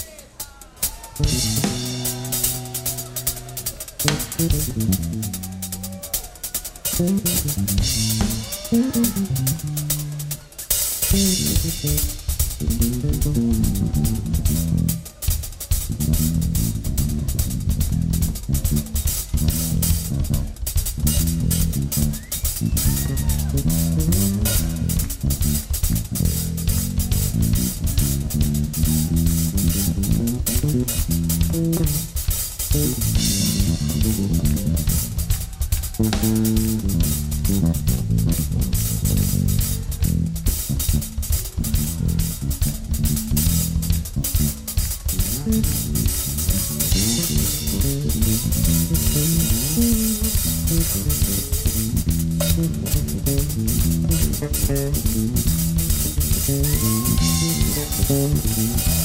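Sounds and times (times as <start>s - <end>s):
drum kit with cymbals: 0.0s - 59.0s
electric bass guitar line: 1.2s - 6.2s, 6.8s - 59.0s.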